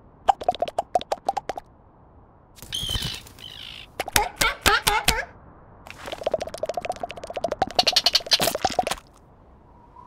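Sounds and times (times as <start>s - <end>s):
squeaky wavering chirp: 2.7s - 3.9s
rapid cartoon pops: 6.1s - 9.1s.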